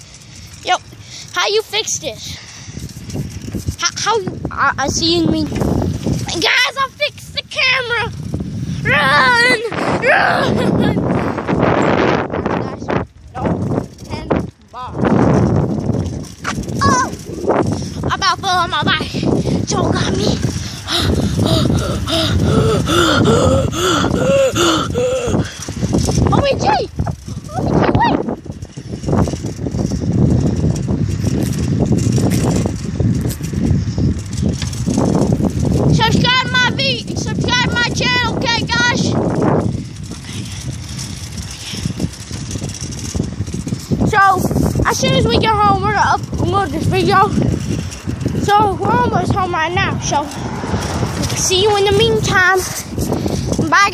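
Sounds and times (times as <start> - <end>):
bicycle rumbling and rattling: 0.0 - 53.9
boy shouting: 6.2 - 8.2, 8.8 - 11.1, 16.8 - 17.2, 18.0 - 25.5, 26.2 - 28.3, 35.9 - 39.2, 44.1 - 47.4, 53.6 - 53.9.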